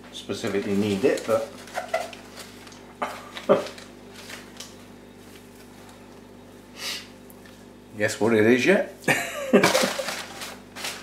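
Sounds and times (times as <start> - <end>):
paper and plastic rustling: 0.1 - 6.1, 9.6 - 11.0.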